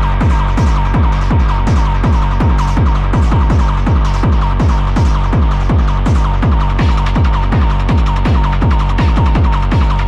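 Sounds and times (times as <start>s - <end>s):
distorted kick drums: 0.0s - 10.0s.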